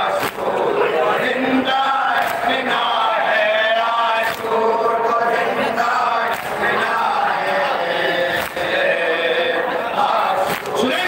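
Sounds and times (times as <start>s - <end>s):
men chanting a lament: 0.0s - 11.0s.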